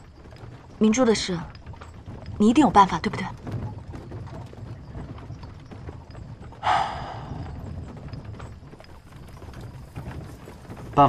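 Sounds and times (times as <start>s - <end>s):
carriage rumble: 0.0s - 11.0s
horse hooves clip-clopping: 0.0s - 11.0s
loud breathy burst: 6.6s - 7.5s.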